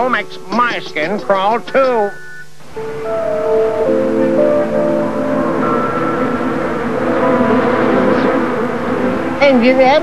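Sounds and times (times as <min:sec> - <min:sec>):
low buzzing drone: 0:00.0 - 0:10.0.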